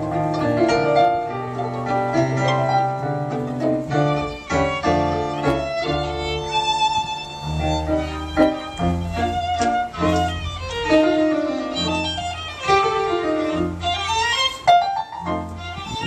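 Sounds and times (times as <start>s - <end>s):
violin melody: 0.0s - 16.0s.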